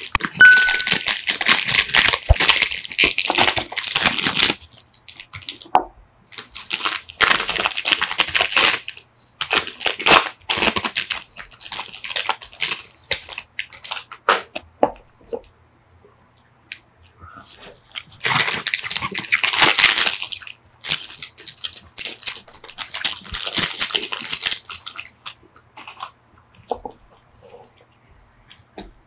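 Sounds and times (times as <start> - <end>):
plastic wrappers crinkling: 0.0 - 5.7, 6.3 - 14.6, 16.7 - 28.8
high ding: 0.4 - 1.0.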